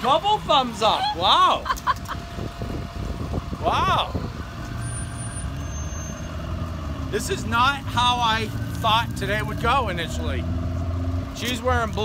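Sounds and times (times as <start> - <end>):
bus engine rumbling: 0.0 - 12.0.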